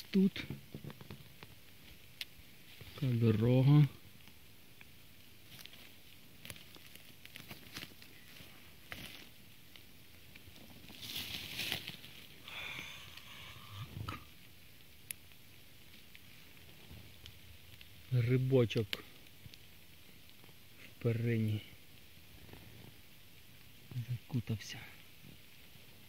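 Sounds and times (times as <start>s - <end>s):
twigs and dry leaves crackling: 0.0s - 26.0s
brushing rustle: 5.4s - 9.4s, 10.5s - 12.4s
footsteps on forest floor: 7.4s - 9.4s, 10.8s - 12.2s.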